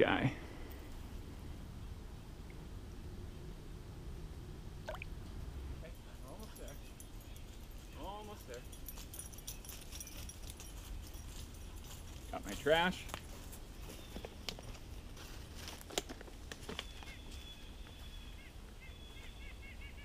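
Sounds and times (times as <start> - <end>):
low steady rumble: 0.3 - 7.7
footsteps on pine needles: 10.5 - 18.2.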